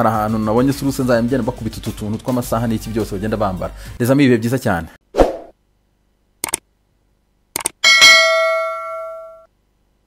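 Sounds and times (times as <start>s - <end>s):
mouse clicks: 6.4s - 6.6s, 7.6s - 7.8s
bright bell ding: 7.8s - 9.5s.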